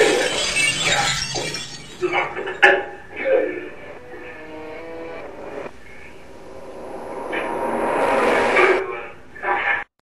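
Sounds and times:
loud noisy crash: 0:05.2 - 0:09.2.

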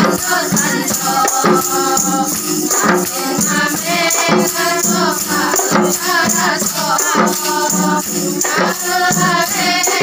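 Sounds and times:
frame drums struck in rhythm: 0:00.0 - 0:10.0
women singing together: 0:00.0 - 0:10.0.

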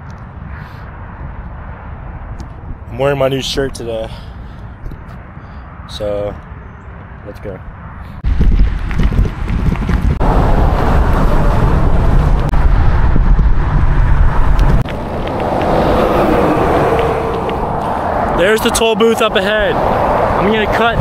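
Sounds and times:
wind blowing over microphone: 0:00.0 - 0:04.0, 0:06.8 - 0:21.0
passing traffic: 0:00.0 - 0:21.0
road noise: 0:00.0 - 0:21.0.

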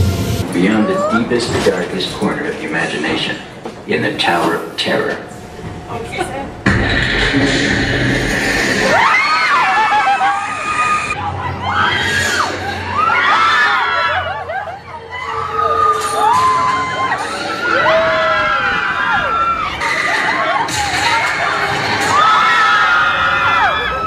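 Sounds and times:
riders screaming and cheering: 0:08.4 - 0:24.0.

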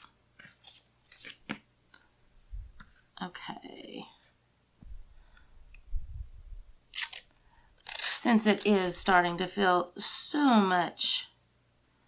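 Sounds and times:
paper crinkling: 0:00.0 - 0:01.6.

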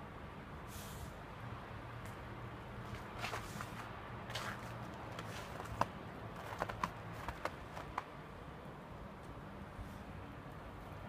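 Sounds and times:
dog paws crunching in snow: 0:02.9 - 0:08.1.

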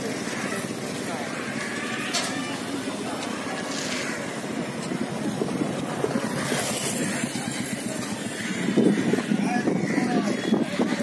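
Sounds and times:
crowd chatter: 0:00.0 - 0:11.0
passing motorbikes and vehicles: 0:00.0 - 0:11.0.

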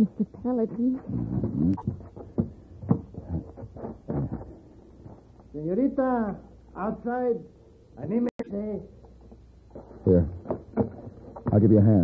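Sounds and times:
short knocks and thumps: 0:01.4 - 0:05.2.

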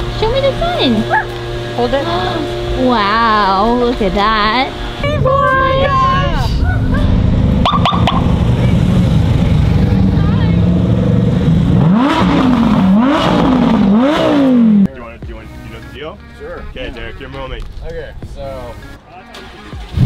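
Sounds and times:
supercar engines revving: 0:00.0 - 0:20.0.

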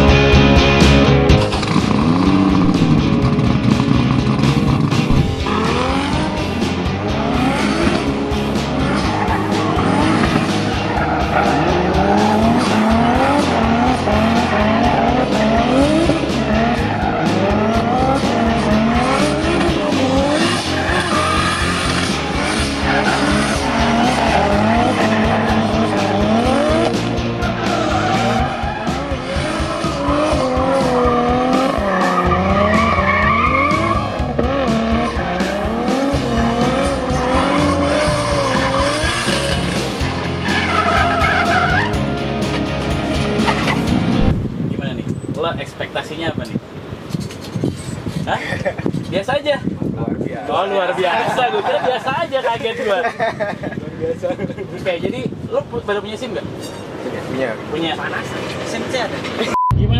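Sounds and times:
background music: 0:00.0 - 0:44.6
car engine revving: 0:00.0 - 0:44.6.

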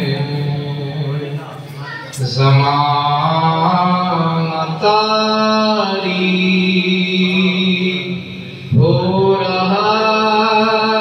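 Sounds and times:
man singing slow melody: 0:00.0 - 0:01.6, 0:02.2 - 0:11.0.

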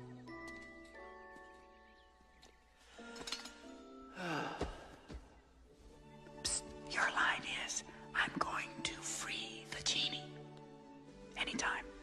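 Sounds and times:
soft background music: 0:00.0 - 0:12.0
person whispering: 0:06.4 - 0:10.3, 0:11.4 - 0:12.0.

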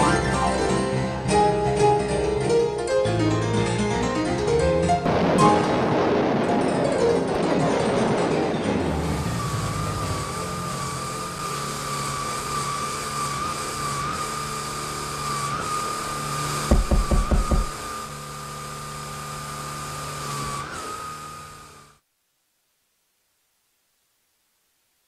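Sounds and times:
vacuum cleaner motor running: 0:10.0 - 0:22.0
vacuum nozzle knocking: 0:16.7 - 0:17.9.

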